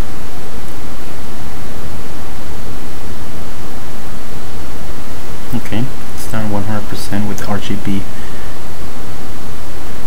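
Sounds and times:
loud steady hiss: 0:00.0 - 0:10.0.

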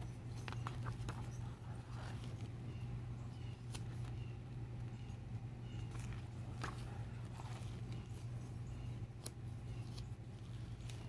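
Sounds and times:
steady low hum: 0:00.0 - 0:11.0
page rustling: 0:00.3 - 0:02.5, 0:05.9 - 0:08.4.

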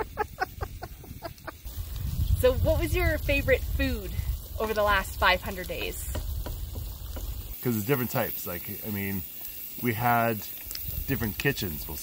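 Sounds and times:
man laughing: 0:00.0 - 0:01.7.

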